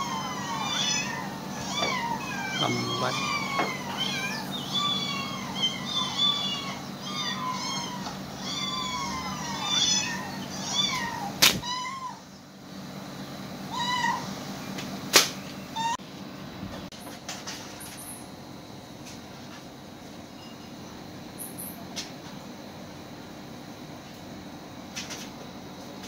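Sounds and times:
cats meowing: 0:00.0 - 0:12.3, 0:13.7 - 0:14.3.

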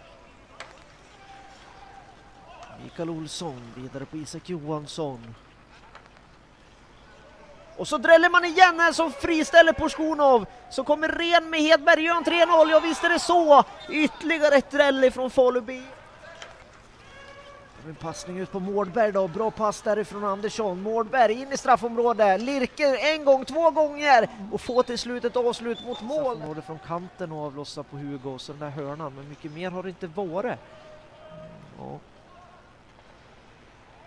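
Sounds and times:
distant voices: 0:00.0 - 0:34.0
low steady hum and hiss: 0:00.0 - 0:34.0.

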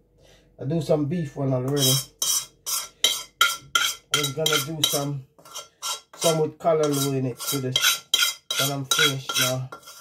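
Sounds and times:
metal utensil scraping a pan: 0:01.7 - 0:10.0.

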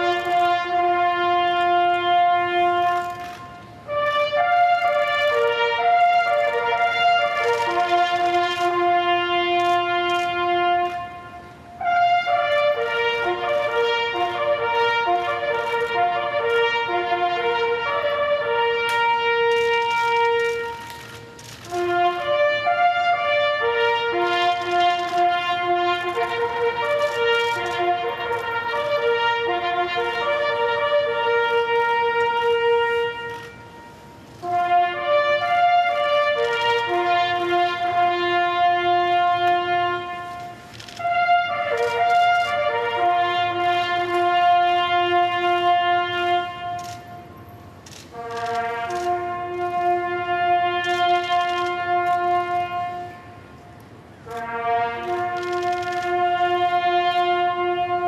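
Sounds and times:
bugle call: 0:00.0 - 0:58.0.

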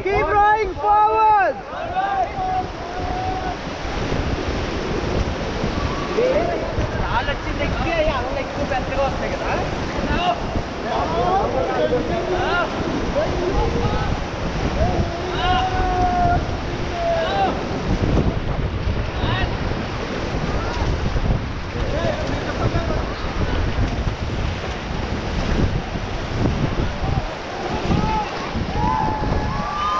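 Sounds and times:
whitewater rushing and splashing: 0:00.0 - 0:29.9
wind buffeting microphone: 0:00.0 - 0:29.9.

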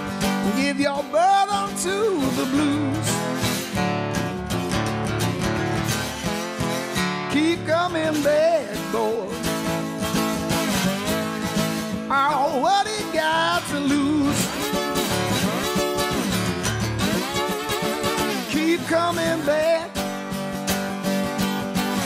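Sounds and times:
acoustic blues guitar: 0:00.0 - 0:22.0.

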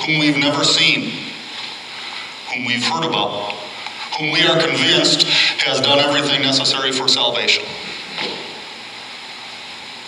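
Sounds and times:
steady room hiss: 0:00.0 - 0:10.0.

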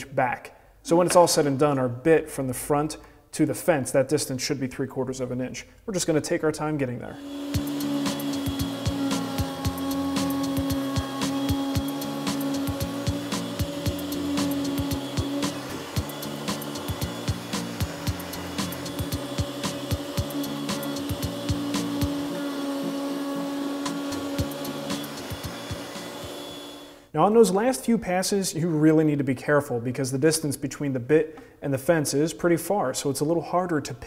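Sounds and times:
router whine: 0:07.1 - 0:27.1
background music with beat: 0:07.4 - 0:22.7, 0:23.7 - 0:26.5.

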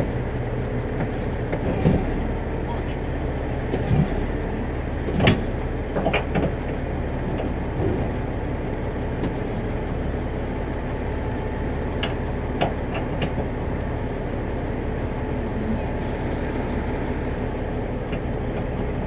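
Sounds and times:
heavy vehicle engine idling: 0:00.0 - 0:19.0
metal clanks: 0:03.7 - 0:04.4.

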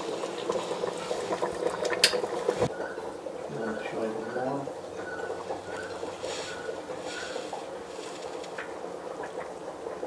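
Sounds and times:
marmalade bubbling in a pot: 0:00.0 - 0:10.0.

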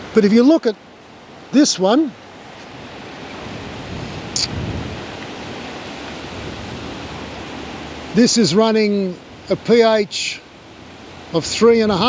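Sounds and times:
rushing outdoor background noise: 0:00.0 - 0:12.0.

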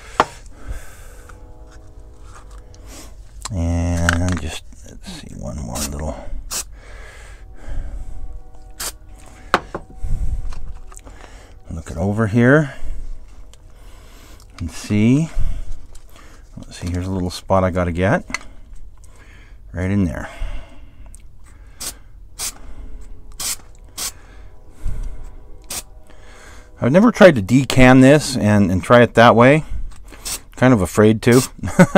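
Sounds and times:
spray paint can hissing: 0:21.8 - 0:22.6, 0:23.3 - 0:24.1.

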